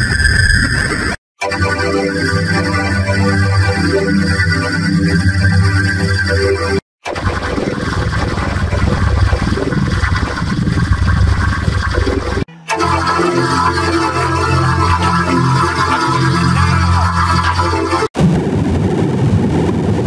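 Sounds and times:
loud steady drone: 1.9s - 18.8s
distorted noisy churning texture: 2.1s - 20.0s.

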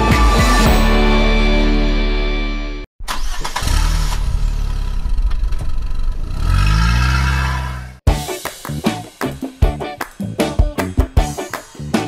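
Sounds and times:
music: 0.0s - 2.9s, 8.1s - 12.0s
car engine starting and revving: 3.0s - 8.0s.

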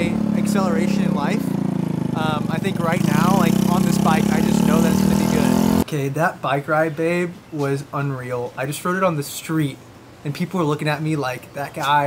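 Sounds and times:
moped engine running: 0.0s - 5.8s.

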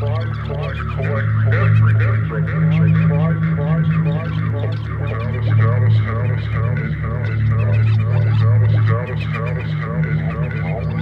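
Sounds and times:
gliding honk-like calls: 0.0s - 11.0s
low bass drone: 0.0s - 11.0s.

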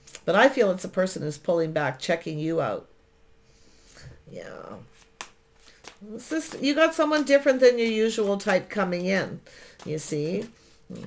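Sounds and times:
cards clicking and tapping on table: 5.2s - 9.2s, 9.8s - 11.0s.

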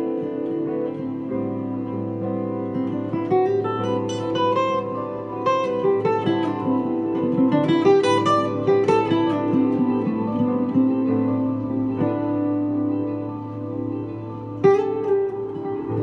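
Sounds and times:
acoustic guitar plucked melody: 0.0s - 16.0s.

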